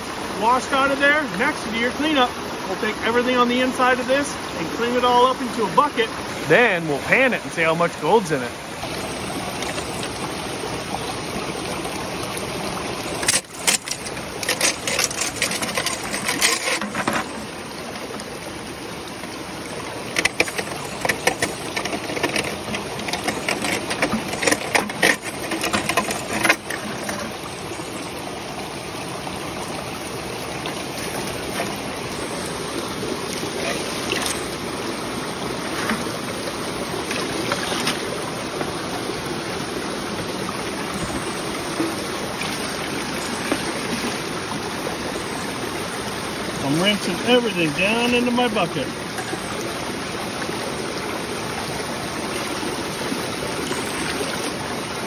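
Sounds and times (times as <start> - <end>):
river rushing: 0.0 - 55.0
splashing and scrubbing in water: 6.6 - 28.1, 29.9 - 45.7, 46.6 - 55.0.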